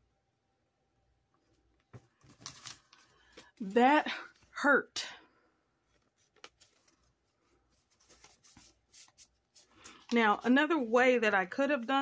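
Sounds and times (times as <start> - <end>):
paper rustling: 1.8 - 4.5, 5.8 - 10.9.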